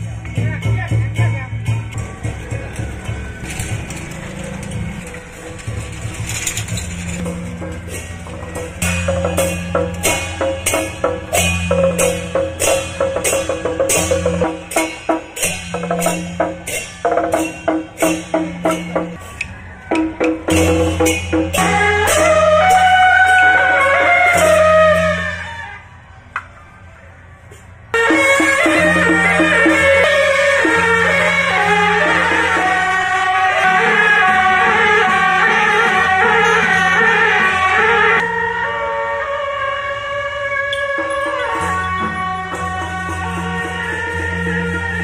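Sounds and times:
music playing: 0.0s - 45.0s
caster wheels rattling on road: 1.7s - 22.3s.

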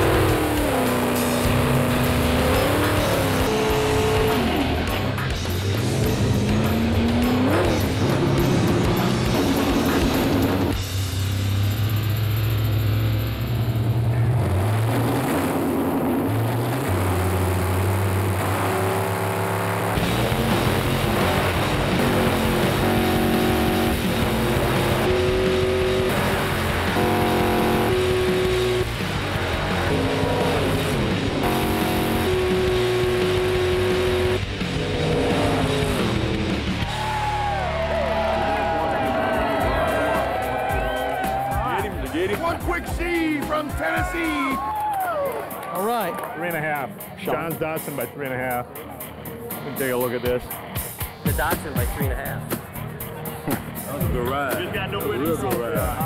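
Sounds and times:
background music with melody: 0.0s - 13.9s, 19.9s - 56.0s
drag-race engines at full throttle: 0.0s - 44.6s, 45.8s - 56.0s.

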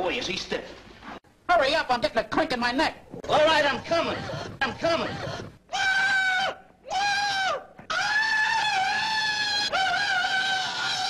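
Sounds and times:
person screaming high-pitched: 5.7s - 11.0s.

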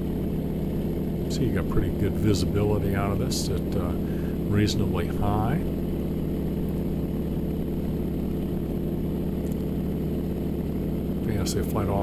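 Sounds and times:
propeller plane engine droning: 0.0s - 12.0s.

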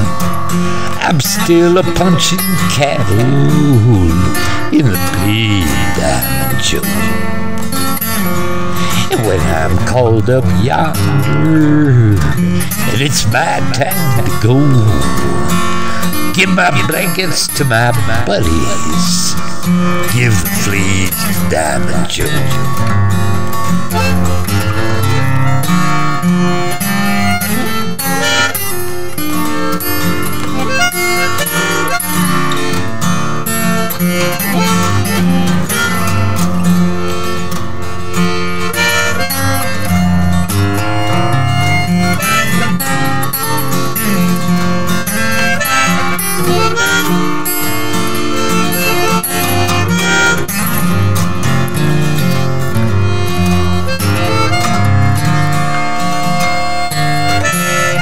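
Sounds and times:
acoustic guitar: 0.0s - 58.0s
harmonica: 0.0s - 58.0s.

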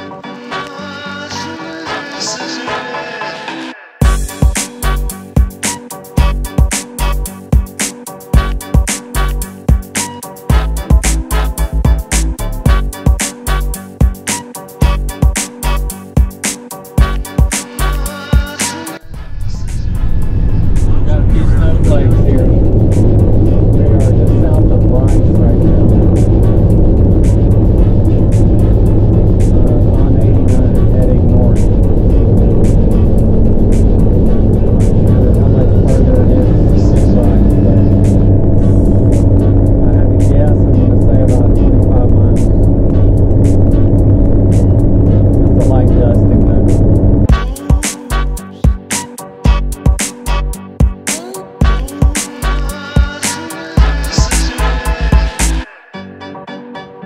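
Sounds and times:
engine and road noise in cab: 19.9s - 36.5s, 37.2s - 47.3s.

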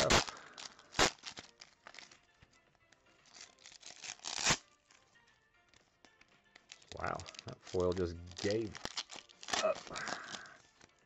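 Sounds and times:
foil wrapper crinkling: 0.0s - 2.2s, 3.2s - 5.0s, 5.7s - 11.0s
foil wrapper ripping: 0.0s - 2.2s, 3.2s - 4.7s, 6.6s - 11.0s.

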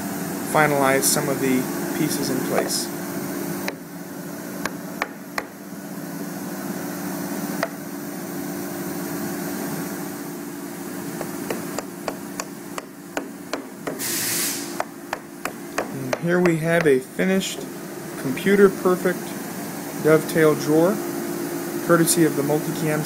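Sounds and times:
steady hum: 0.0s - 23.0s
wooden parts knocking: 11.2s - 14.0s
brief hiss: 14.0s - 14.7s.

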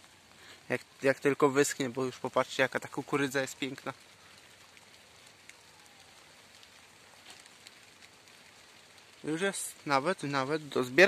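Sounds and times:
light rain hiss: 0.0s - 11.0s
small ticks: 3.6s - 9.3s.

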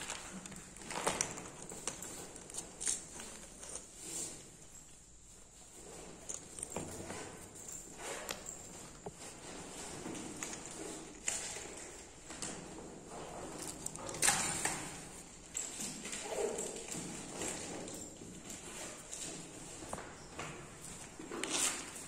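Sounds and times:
backpack rustling and clicking: 0.0s - 4.9s, 5.7s - 22.0s.

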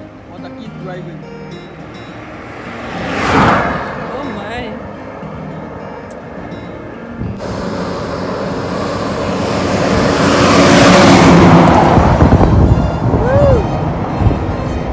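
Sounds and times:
truck passing by: 1.6s - 14.9s
wind on microphone: 9.4s - 14.9s.

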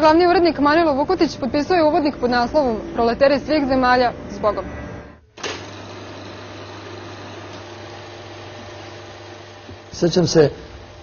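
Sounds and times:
film projector whirring: 5.3s - 11.0s.

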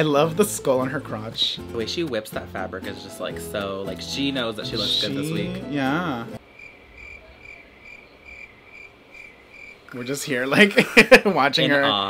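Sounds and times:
cricket chirping: 6.4s - 10.0s.

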